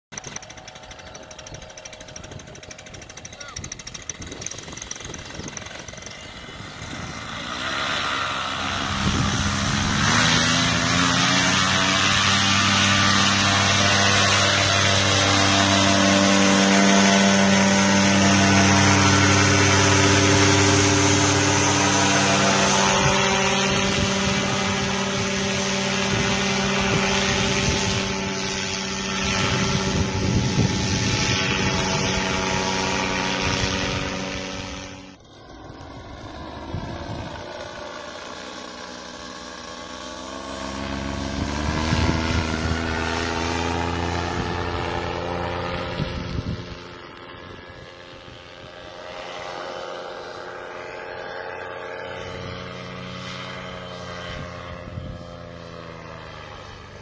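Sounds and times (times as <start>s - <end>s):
paramotor engine and propeller: 0.1s - 57.0s.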